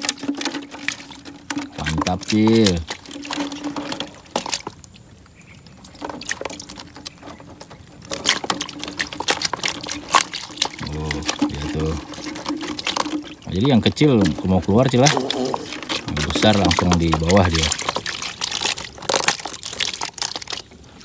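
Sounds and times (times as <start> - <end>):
wire mesh rattling and clicking: 0.0 - 5.0, 5.8 - 20.6
water pouring and dripping: 0.0 - 21.0.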